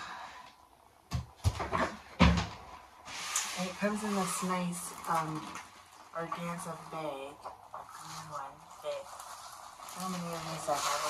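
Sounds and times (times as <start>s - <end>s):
light fabric rustle: 3.0s - 11.0s.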